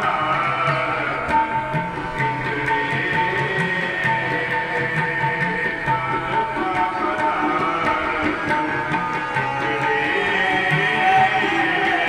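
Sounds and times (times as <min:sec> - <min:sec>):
harmonium playing held notes: 0:00.0 - 0:12.0
tabla rhythm: 0:00.0 - 0:12.0.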